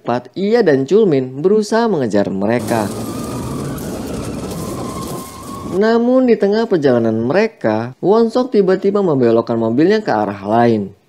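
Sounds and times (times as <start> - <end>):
car engine running hard: 2.6 - 5.7
road and tyre noise: 2.6 - 5.8.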